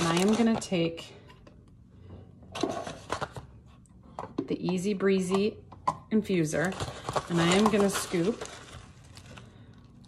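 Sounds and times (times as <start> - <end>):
foil pouch rustling: 0.0 - 0.6, 6.5 - 9.9.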